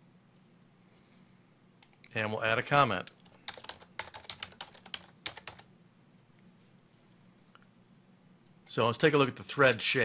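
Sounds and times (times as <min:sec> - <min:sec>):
computer keyboard typing: 0:03.0 - 0:05.7.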